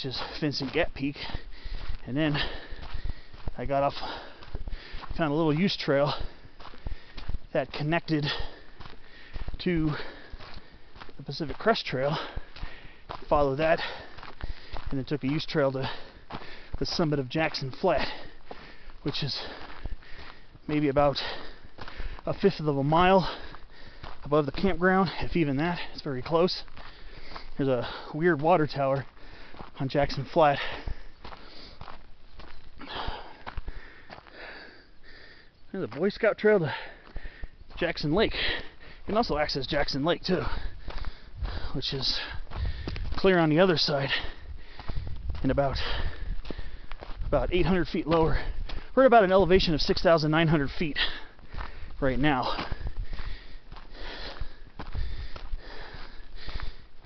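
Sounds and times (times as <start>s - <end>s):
person breathing heavily: 0.0s - 28.3s, 29.0s - 35.7s, 36.4s - 49.0s, 49.7s - 57.0s
footsteps on dirt road: 0.0s - 57.0s.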